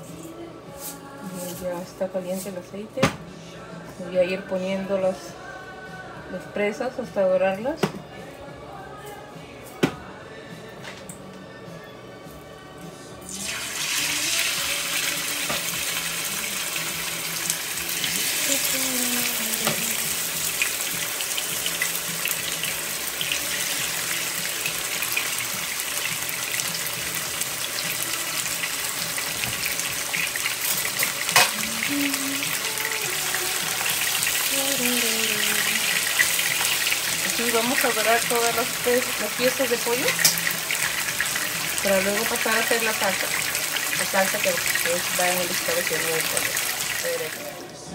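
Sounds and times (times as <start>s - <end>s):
chicken sizzling in hot oil: 13.3s - 47.6s.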